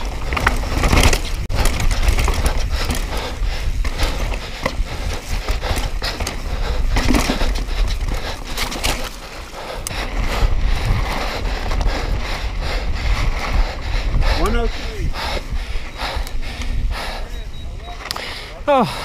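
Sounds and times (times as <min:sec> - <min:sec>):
bike clattering and rattling: 0:00.0 - 0:18.4
wind buffeting microphone: 0:00.0 - 0:18.4
tyres on dirt and stones: 0:00.0 - 0:19.0.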